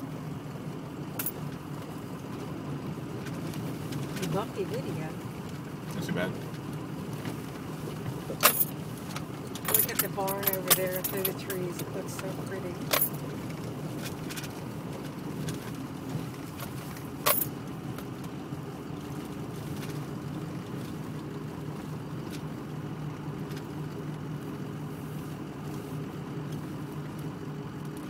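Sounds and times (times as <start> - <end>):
car engine and road rumble: 0.0 - 28.0.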